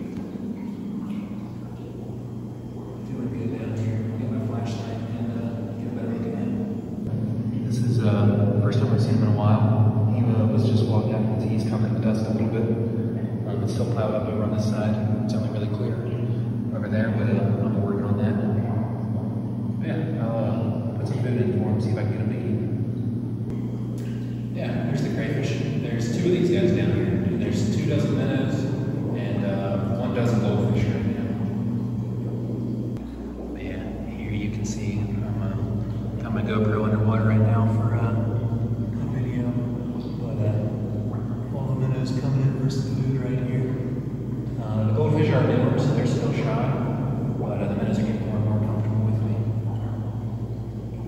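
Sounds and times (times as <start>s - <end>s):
pump equipment humming: 0.0s - 51.0s.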